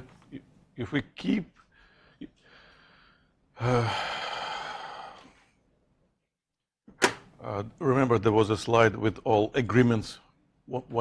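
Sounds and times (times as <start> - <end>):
man sighing: 3.5 - 5.4.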